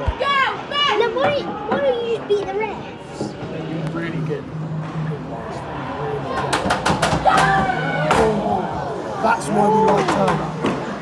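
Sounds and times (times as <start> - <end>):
arena crowd voices: 0.0 - 11.0.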